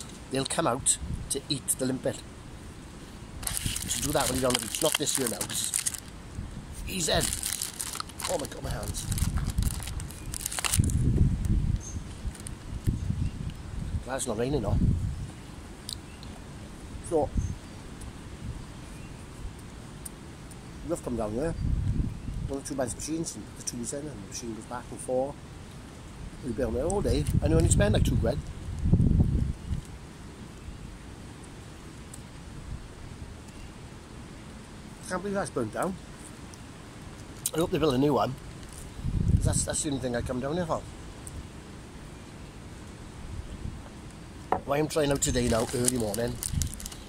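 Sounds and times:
wind buffeting microphone: 0:03.3 - 0:15.4, 0:21.4 - 0:22.6, 0:26.6 - 0:29.9, 0:38.9 - 0:40.2, 0:44.5 - 0:47.0
plastic packaging crinkling: 0:03.4 - 0:06.1, 0:06.9 - 0:11.1, 0:12.0 - 0:12.6, 0:45.0 - 0:47.0.

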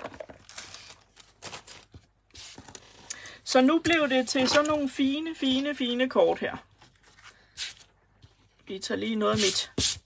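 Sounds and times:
paper rustling: 0:00.0 - 0:03.0.

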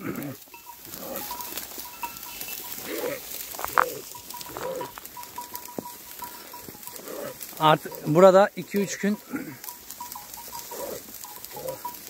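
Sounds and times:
sheep bleating: 0:00.0 - 0:12.0.

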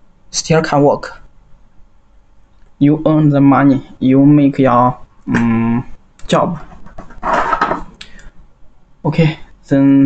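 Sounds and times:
rustling scrape of cables: 0:06.6 - 0:07.9.

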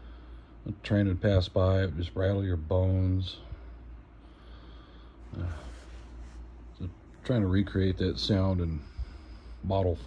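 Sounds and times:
man breathing: 0:00.0 - 0:00.6, 0:03.4 - 0:06.7, 0:08.7 - 0:09.7
low steady hum: 0:00.0 - 0:10.0.

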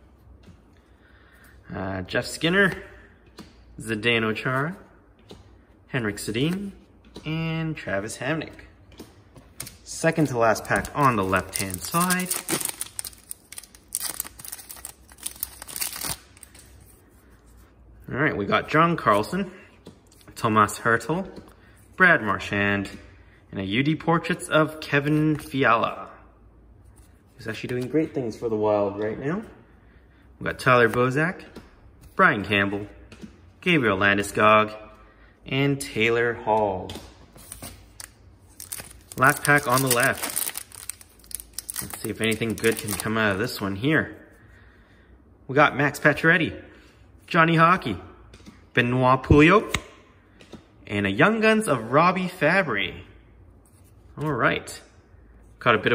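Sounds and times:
wrapper tearing and crinkling: 0:10.1 - 0:16.6, 0:38.0 - 0:43.2.

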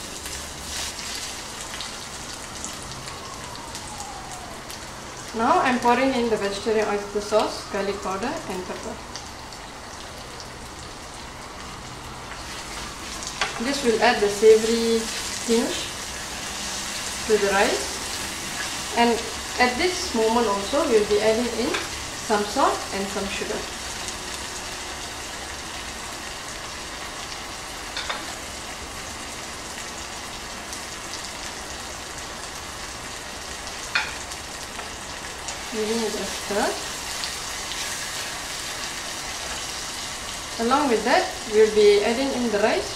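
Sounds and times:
mushrooms sizzling in oil: 0:00.0 - 0:42.9.

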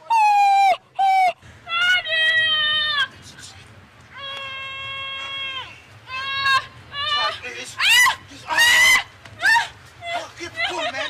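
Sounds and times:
woman wailing: 0:04.2 - 0:11.0.

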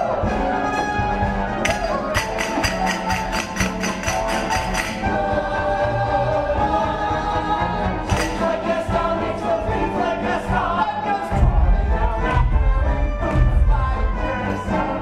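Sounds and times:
chorus singing held notes: 0:00.0 - 0:15.0
rhythmic percussion beat: 0:00.0 - 0:15.0
theatre orchestra playing: 0:00.0 - 0:15.0.

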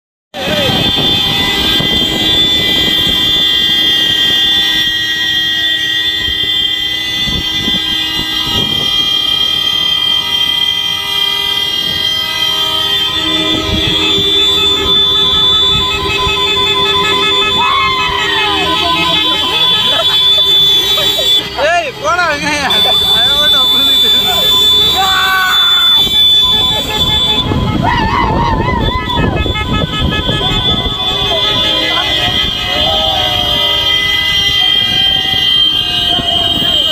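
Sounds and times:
engines rumbling: 0:00.3 - 0:36.9
road noise: 0:00.3 - 0:36.9
vehicle horns blaring: 0:00.3 - 0:36.9
horn beeping in rapid pulses: 0:00.4 - 0:36.9
lower horn: 0:00.4 - 0:36.9
wavering pitched sound: 0:02.0 - 0:21.0.

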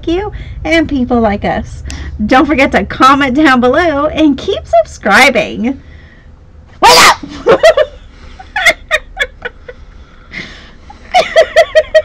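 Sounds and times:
person laughing: 0:07.2 - 0:09.8, 0:10.4 - 0:12.0.

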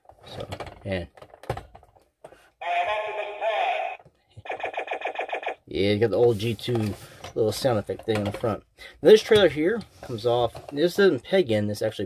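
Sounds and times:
toy electronic sound effect: 0:02.6 - 0:05.6.

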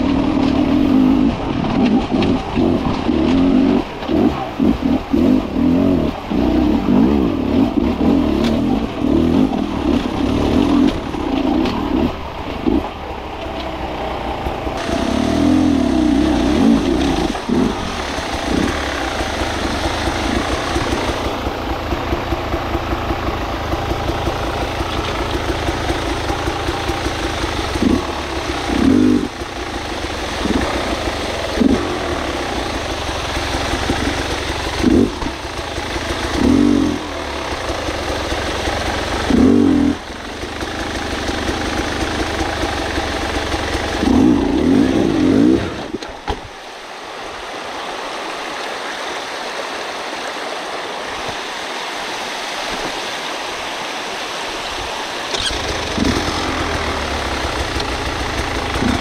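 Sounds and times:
motorcycle engine throttle blips: 0:55.3 - 0:59.0.

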